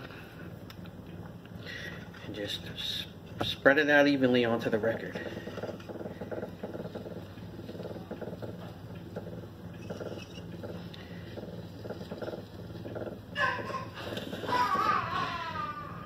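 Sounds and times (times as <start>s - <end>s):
turntable running hum: 0.0s - 16.0s
card rubbing on spinning disc: 5.0s - 14.8s.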